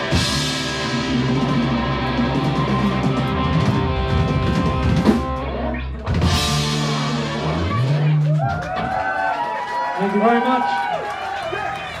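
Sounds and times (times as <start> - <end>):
people talking and calling out: 7.0 - 9.2.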